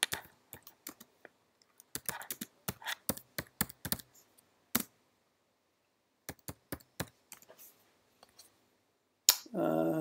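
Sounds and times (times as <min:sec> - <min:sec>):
computer keyboard typing: 0:00.0 - 0:01.1, 0:01.8 - 0:04.1, 0:06.3 - 0:07.5.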